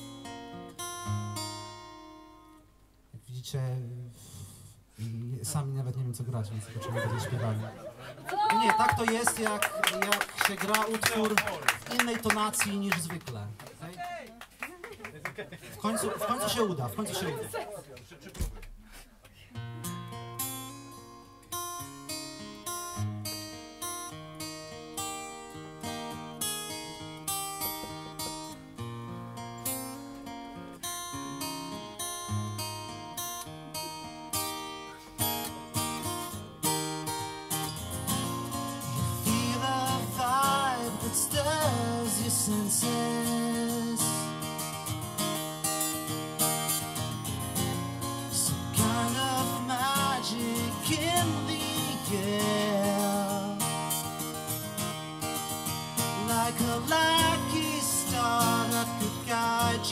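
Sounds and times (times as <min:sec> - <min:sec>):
acoustic guitar picking: 0:00.0 - 0:05.2, 0:19.6 - 0:59.9.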